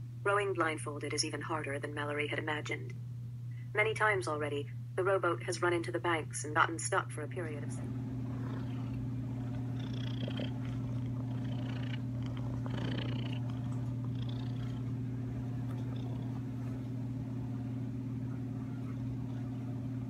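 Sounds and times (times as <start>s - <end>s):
cat purring: 7.8s - 20.0s.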